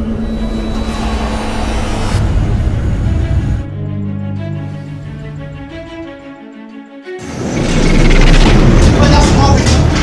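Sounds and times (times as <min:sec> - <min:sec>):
rushing noise: 0:00.0 - 0:05.9, 0:07.2 - 0:10.0
deep rumble: 0:00.0 - 0:06.2.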